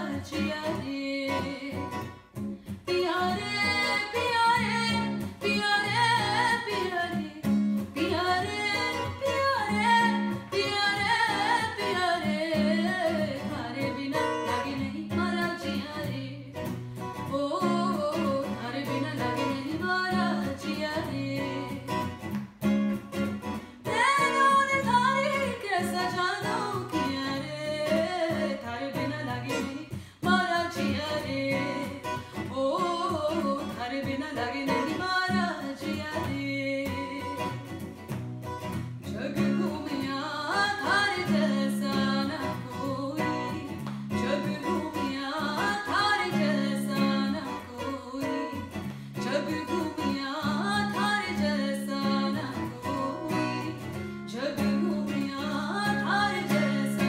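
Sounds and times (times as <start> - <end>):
woman singing: 0.0 - 22.5, 23.2 - 57.0
acoustic guitar: 0.0 - 57.0.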